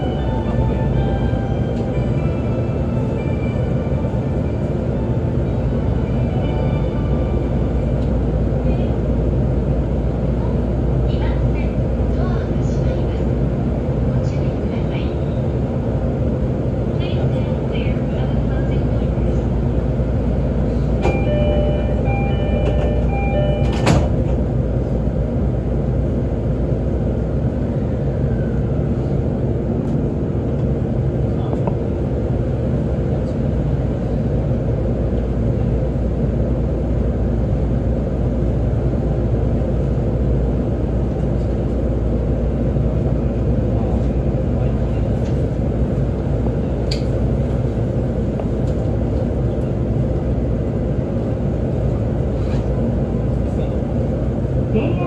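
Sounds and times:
train equipment hum: 0.0 - 55.0
train pulling away: 20.6 - 25.3.

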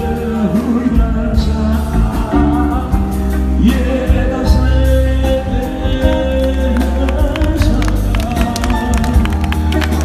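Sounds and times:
backing track with steady beat: 0.0 - 10.0
man singing into a microphone: 0.0 - 10.0.

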